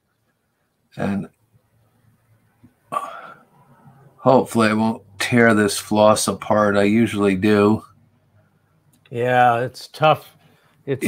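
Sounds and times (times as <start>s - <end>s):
man's throat sound: 2.9s - 3.4s.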